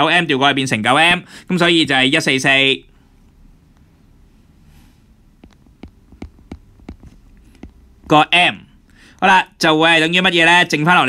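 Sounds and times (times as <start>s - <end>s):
stylus tapping on glass screen: 5.4s - 8.1s.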